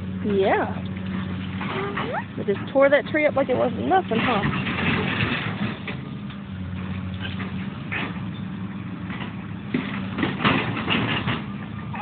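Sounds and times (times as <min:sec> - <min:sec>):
excavator diesel engine running: 0:00.0 - 0:12.0.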